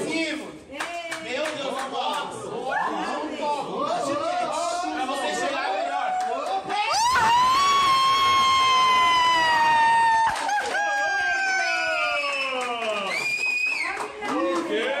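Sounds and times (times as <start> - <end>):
young people screaming: 6.9 - 12.6
long high scream falling in pitch: 7.0 - 10.3.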